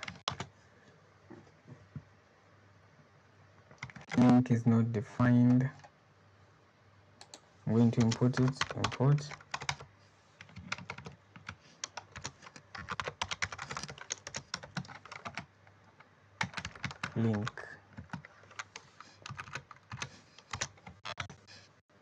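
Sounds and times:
typing on computer keyboard: 0.0 - 0.5, 3.7 - 4.3, 7.2 - 9.8, 10.4 - 21.3.

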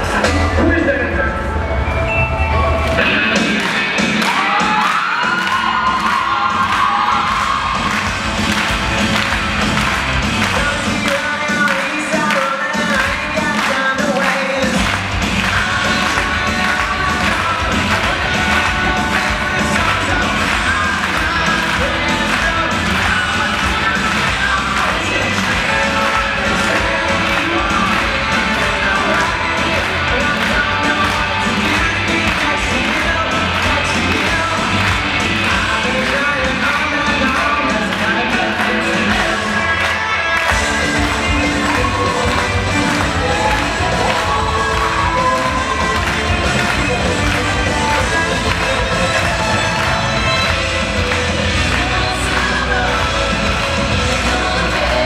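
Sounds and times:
loud dance music over loudspeakers: 0.0 - 2.0, 2.6 - 55.0.

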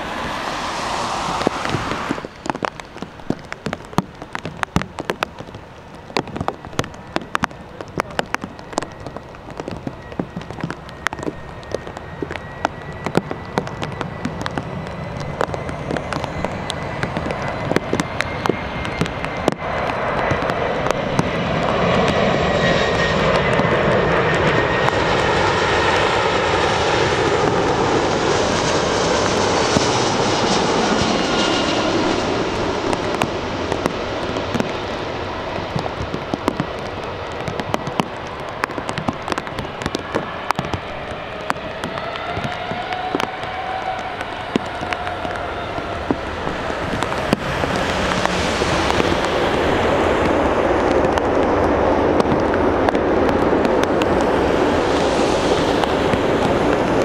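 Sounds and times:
thin engine whine: 0.0 - 37.0, 38.6 - 57.0
jet airliner passing low: 0.0 - 57.0
raindrops ticking: 0.2 - 27.9, 29.2 - 57.0.

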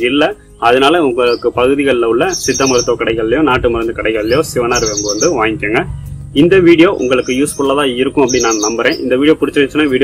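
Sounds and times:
background music: 0.0 - 10.0
birds chirping: 0.0 - 10.0
man talking: 0.0 - 10.0.

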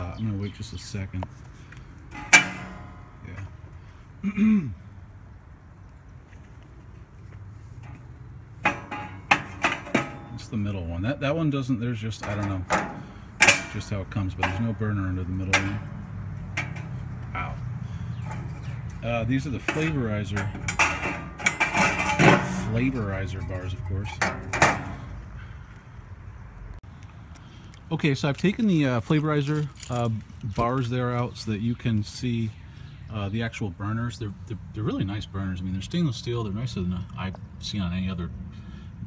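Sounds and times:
sharp metal knocks: 2.1 - 3.4, 7.8 - 10.6, 12.2 - 14.8, 15.4 - 17.4, 18.1 - 25.2
metal bars clanking: 2.1 - 3.5, 7.8 - 11.3, 12.0 - 25.2.

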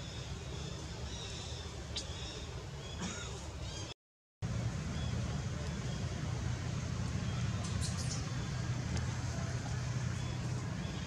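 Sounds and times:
low background rumble: 4.4 - 11.0.

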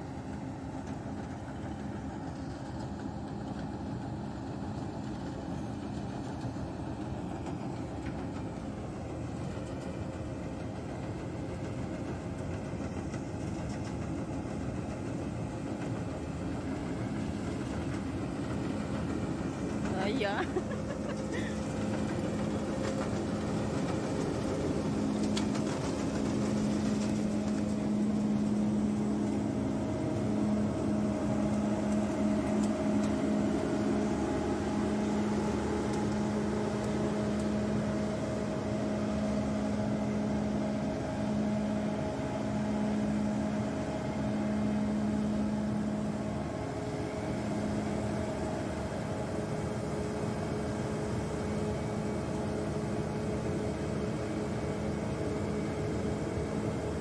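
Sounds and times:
diesel engine droning: 0.1 - 57.0.

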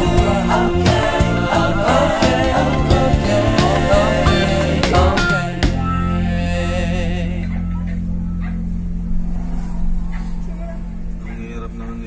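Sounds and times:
car engine and road drone: 0.0 - 12.0.

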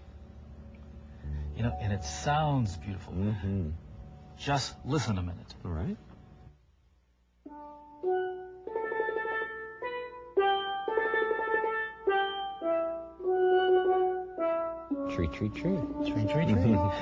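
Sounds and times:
steel pan melody: 7.5 - 17.0.

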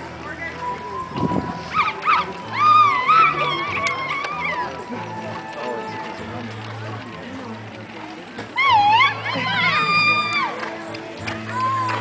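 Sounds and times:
horse hoofbeats on dirt: 1.6 - 12.0.

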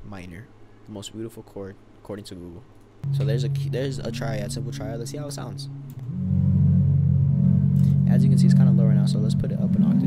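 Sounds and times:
sustained low synthesizer chord: 3.0 - 10.0.

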